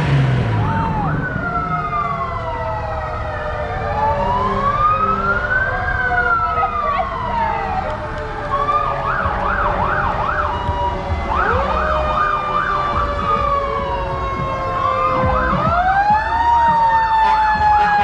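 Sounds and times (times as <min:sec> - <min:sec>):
car engines rumbling: 0:00.0 - 0:18.0
emergency sirens wailing: 0:00.0 - 0:18.0.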